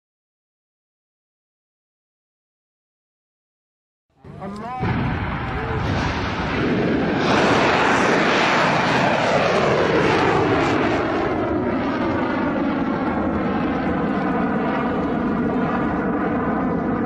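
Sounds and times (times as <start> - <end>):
missile engine rushing: 4.2 - 16.0.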